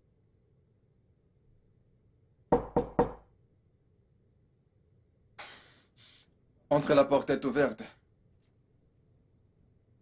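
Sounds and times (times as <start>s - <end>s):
knocks on a door: 2.5s - 3.3s.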